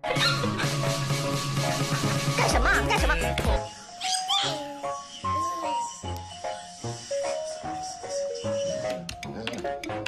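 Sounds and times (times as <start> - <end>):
background music: 0.0 - 10.0
puppy crying: 3.9 - 5.8.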